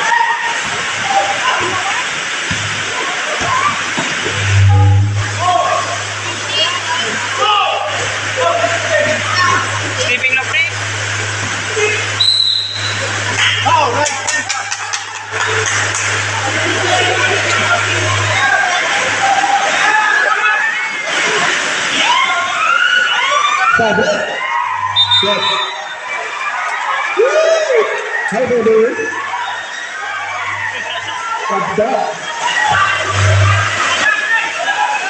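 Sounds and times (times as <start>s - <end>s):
crowd chattering and shouting: 0.0s - 35.0s
steady low hum: 4.3s - 19.4s, 32.8s - 34.0s.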